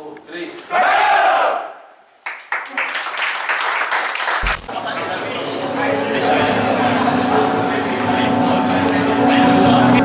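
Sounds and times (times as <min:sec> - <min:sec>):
loud group shout: 0:00.7 - 0:01.8
noisy sound: 0:04.4 - 0:04.8.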